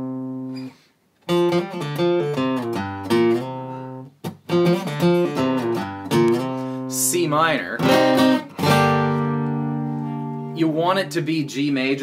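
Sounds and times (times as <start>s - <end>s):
acoustic guitar chord ringing: 0.0s - 7.0s, 7.8s - 10.7s
man talking: 6.9s - 7.9s, 10.5s - 12.0s.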